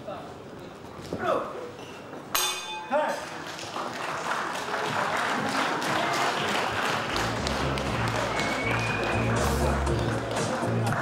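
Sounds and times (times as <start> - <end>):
boxing ring bell: 2.4 - 3.0
crowd cheering and applause: 3.3 - 11.0.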